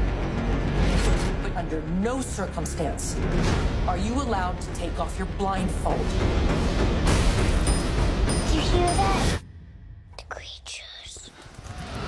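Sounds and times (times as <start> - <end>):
whispering voices: 10.2 - 11.4.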